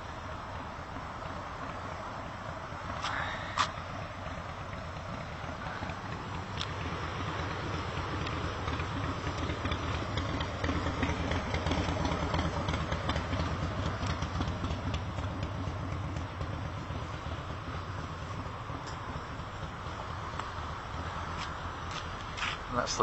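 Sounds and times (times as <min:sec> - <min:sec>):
engine running with low rumble: 0:00.0 - 0:23.0.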